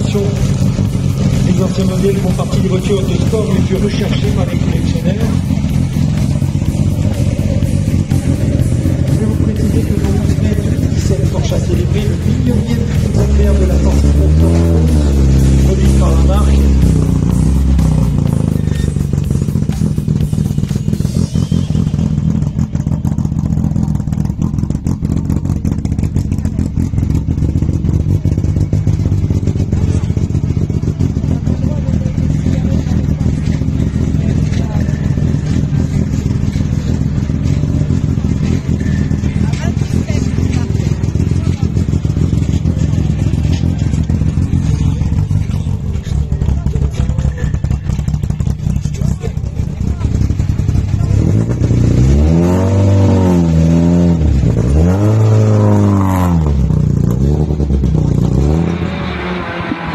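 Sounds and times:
car engine idling: 0.0s - 59.9s
music: 2.2s - 13.1s, 16.2s - 22.6s.

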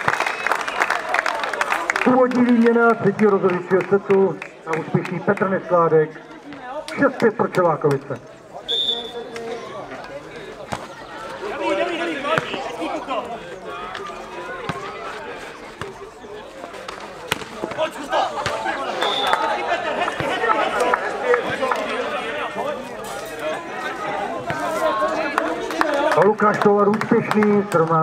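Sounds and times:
voices of players and spectators: 0.0s - 28.0s.

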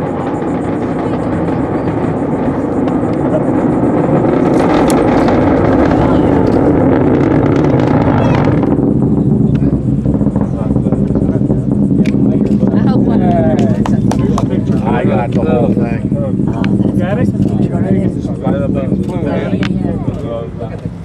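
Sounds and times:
distant rocket engine rumble: 0.0s - 21.0s.

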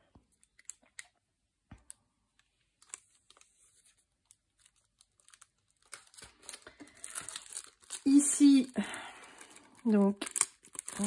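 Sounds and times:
plastic packaging crinkling: 1.8s - 11.0s.

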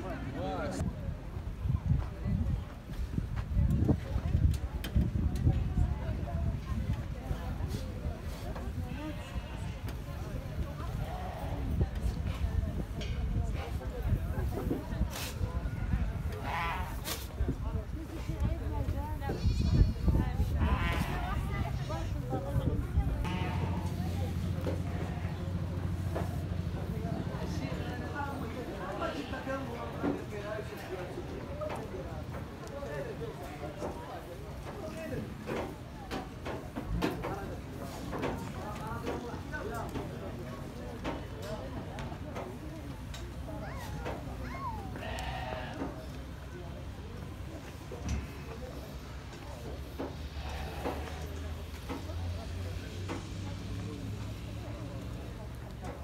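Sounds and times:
sheep bleating: 23.2s - 24.0s, 45.0s - 45.8s.

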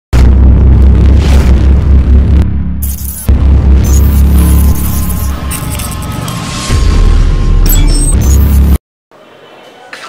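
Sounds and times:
deep boom with low rumble: 0.1s - 5.4s.

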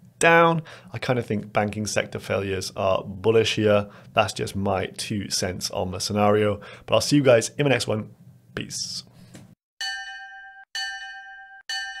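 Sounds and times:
bell-like chime: 9.8s - 12.0s.

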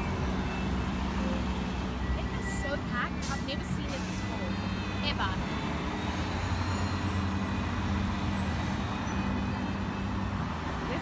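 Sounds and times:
cars driving past: 0.0s - 11.0s.

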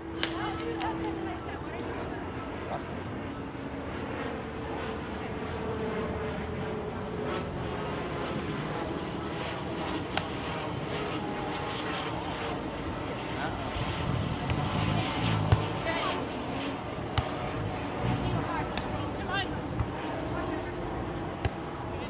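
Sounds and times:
distant aircraft engine rumble: 0.0s - 22.0s
faint voices: 0.0s - 22.0s.

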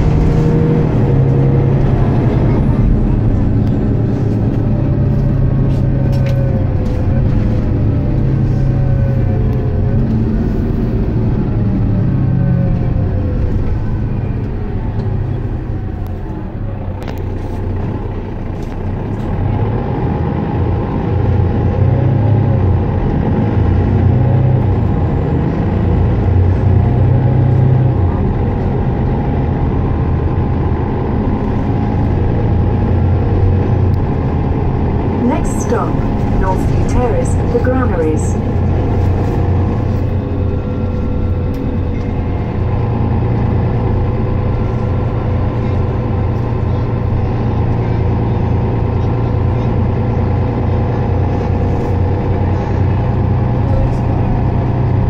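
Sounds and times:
bus diesel engine running: 0.0s - 55.0s.

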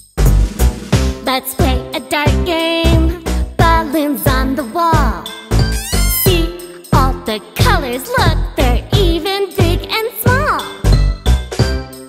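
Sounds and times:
instrumental children's song: 0.0s - 12.0s.

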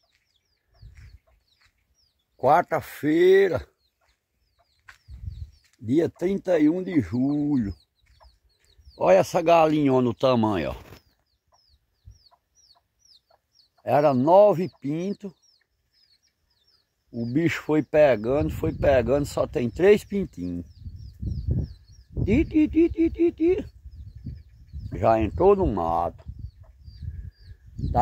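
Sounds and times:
chicks peeping: 0.0s - 28.0s
hen clucking softly: 6.0s - 8.8s, 11.1s - 16.9s, 26.1s - 27.5s.

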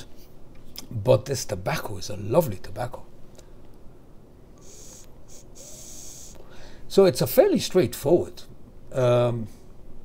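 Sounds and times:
vape hiss: 4.6s - 6.6s.

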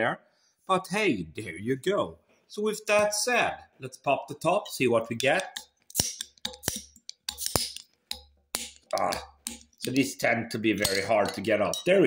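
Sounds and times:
bottle opener clicking on cap: 5.2s - 10.1s, 10.8s - 11.9s.

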